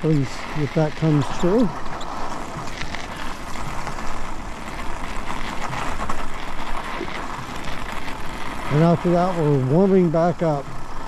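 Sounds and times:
small crackles: 0.0s - 11.0s
tyres rolling over snow: 0.0s - 11.0s.

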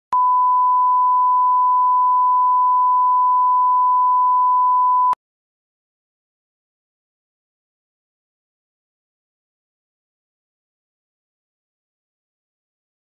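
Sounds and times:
steady pure test tone beep: 0.1s - 5.2s.

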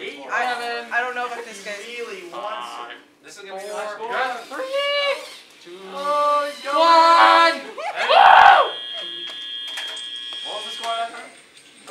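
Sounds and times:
young people calling out: 5.9s - 8.8s
loud shout: 6.4s - 8.8s.

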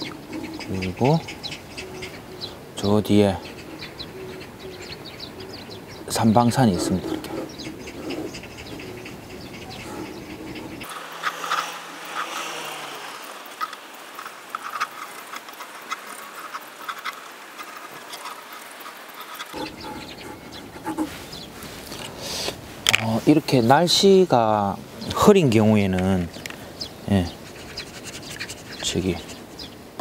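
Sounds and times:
pencil scratching on canvas: 6.2s - 10.9s, 19.5s - 21.3s, 27.4s - 29.4s.

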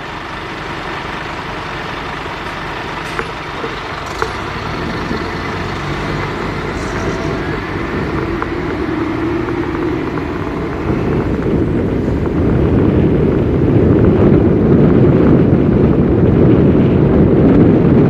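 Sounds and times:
car engine and road noise: 0.0s - 18.0s.

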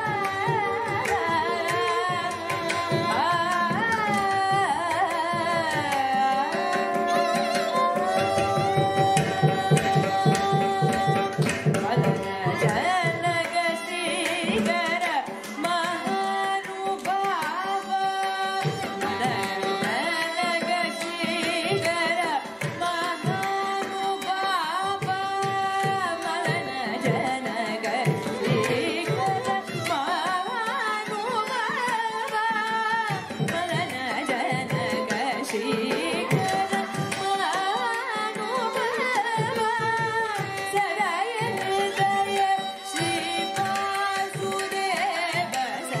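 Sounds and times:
violins: 0.0s - 46.0s
woman singing: 0.0s - 46.0s.

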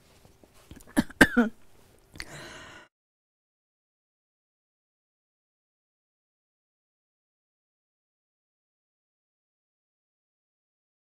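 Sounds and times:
woman coughing: 0.8s - 1.6s.

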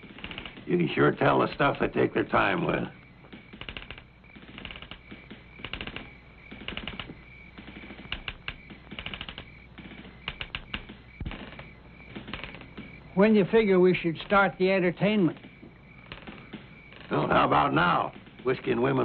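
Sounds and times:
rapid clicking bursts: 0.0s - 19.0s.

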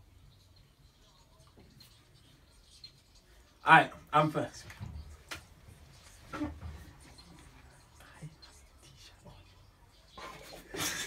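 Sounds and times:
person whispering: 7.4s - 9.9s.

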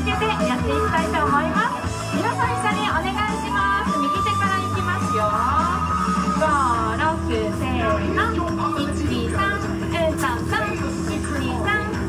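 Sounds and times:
pop song over loudspeaker: 0.0s - 12.0s.

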